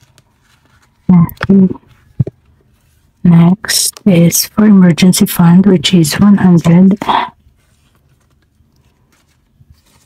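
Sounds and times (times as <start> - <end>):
paper banknotes rustling: 0.0 - 3.3, 5.9 - 10.0.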